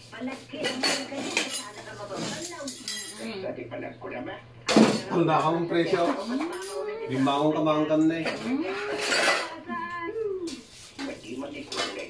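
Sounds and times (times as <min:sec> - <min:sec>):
metal utensils clinking on cookware: 0:00.6 - 0:03.3, 0:04.8 - 0:07.0, 0:08.0 - 0:09.6.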